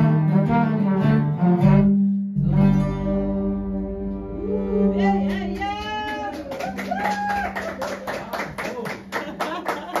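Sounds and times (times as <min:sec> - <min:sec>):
people applauding: 0:05.2 - 0:10.0.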